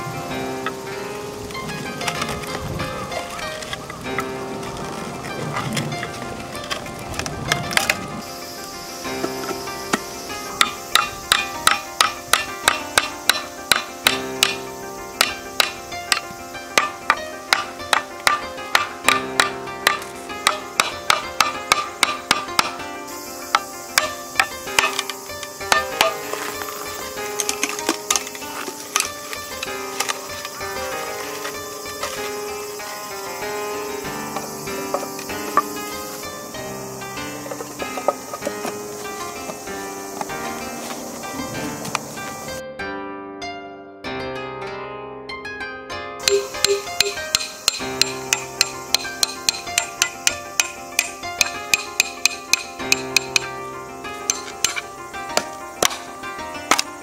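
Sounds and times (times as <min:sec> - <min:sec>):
background music: 0:00.0 - 0:57.0
chisel tapping into bamboo: 0:10.6 - 0:14.6, 0:15.2 - 0:22.8, 0:23.5 - 0:26.2, 0:46.2 - 0:53.5, 0:54.3 - 0:54.8.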